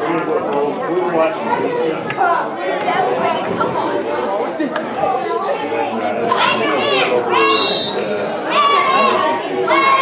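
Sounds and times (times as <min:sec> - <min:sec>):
chatter of many voices: 0:00.0 - 0:10.0
children shouting together: 0:08.5 - 0:10.0.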